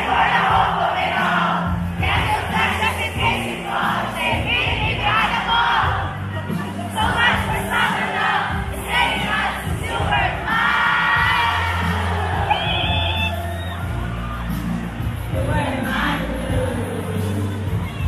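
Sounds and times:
crowd cheering and shouting: 0.0s - 18.0s
loud amplified pop music: 0.0s - 18.0s.

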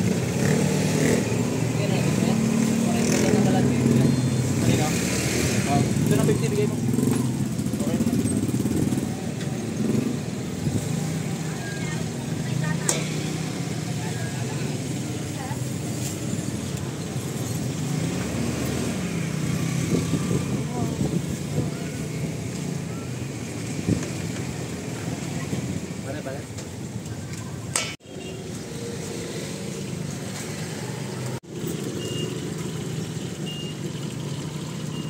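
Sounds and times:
small motorcycle engines idling: 0.0s - 15.9s, 29.7s - 35.0s.

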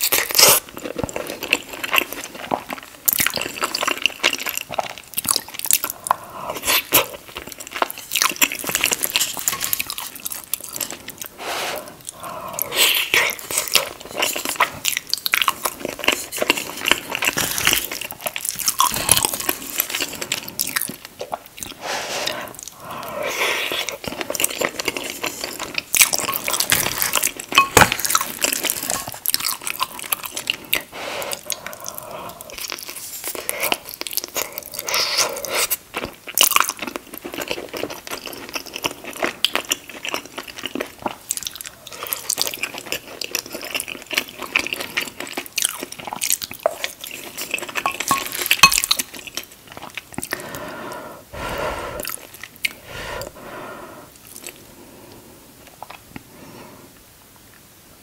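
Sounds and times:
close-miked chewing food: 0.0s - 57.6s.

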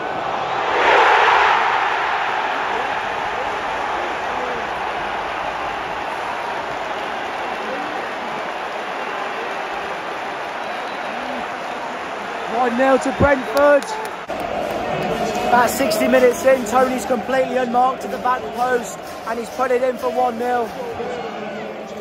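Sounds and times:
stadium crowd roaring and cheering: 0.0s - 22.0s.

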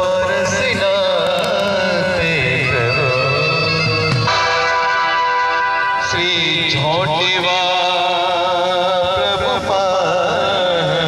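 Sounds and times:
devotional band music: 0.0s - 11.0s.

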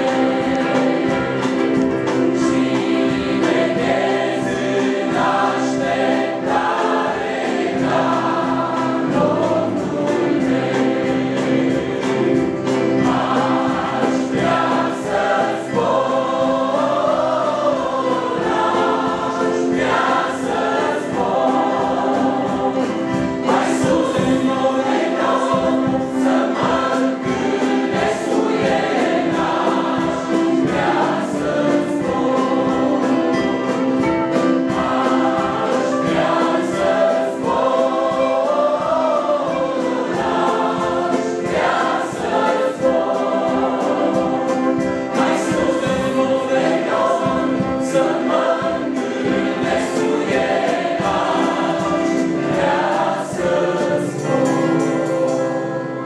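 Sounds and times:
congregation singing a hymn: 0.0s - 56.0s
digital piano accompaniment: 0.0s - 56.0s.

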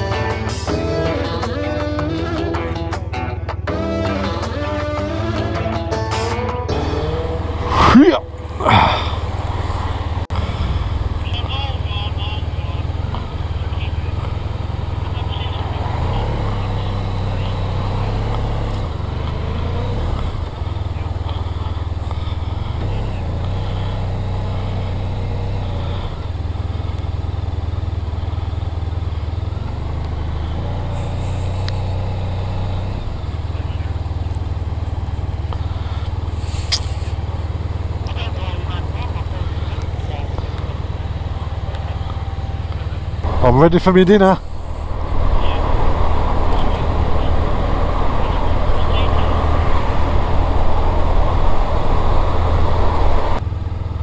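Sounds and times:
motorcycle engine rumble: 6.7s - 54.0s
wind noise: 44.4s - 53.4s.

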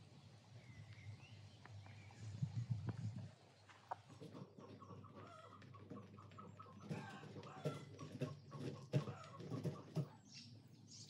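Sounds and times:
chickens clucking: 3.9s - 10.6s.

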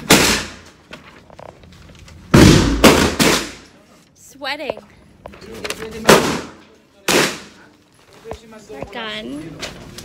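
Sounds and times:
gunshots echoing indoors: 0.0s - 0.8s, 2.3s - 3.7s.

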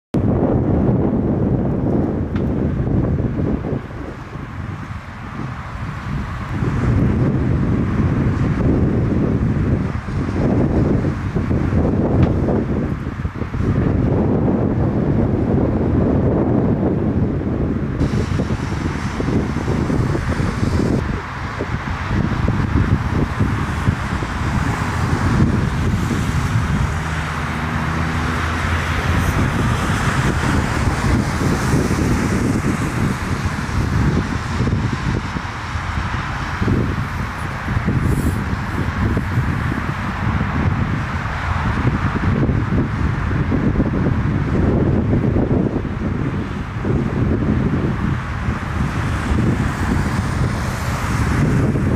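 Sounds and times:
jet engine noise: 0.1s - 51.9s
wind buffeting microphone: 0.1s - 51.9s.

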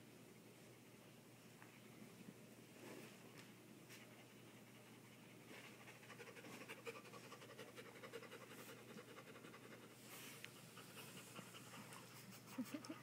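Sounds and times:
dog panting: 4.0s - 13.0s.

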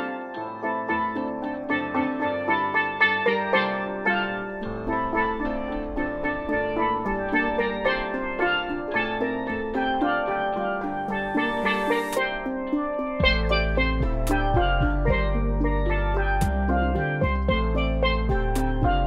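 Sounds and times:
steel pans playing fast melody: 0.0s - 19.0s
deep bass notes: 13.2s - 19.0s.

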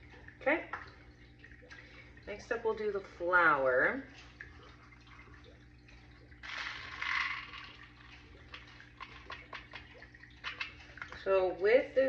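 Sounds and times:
steady low hum: 0.0s - 12.0s
beads pouring into plastic cup: 6.4s - 7.8s.

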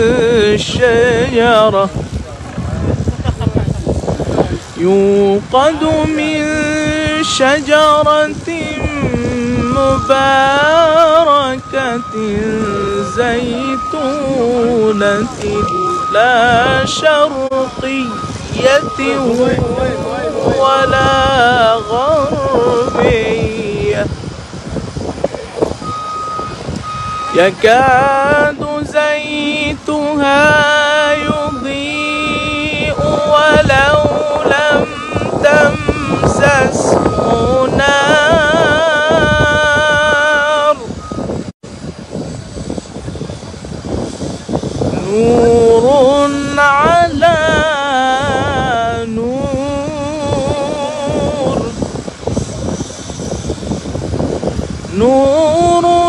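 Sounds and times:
outdoor background noise: 0.0s - 56.0s
wind buffeting microphone: 0.0s - 56.0s
person reciting phrases: 4.7s - 24.2s, 27.3s - 41.0s
vehicle backup alarm beeping: 4.9s - 24.3s, 25.7s - 41.5s.

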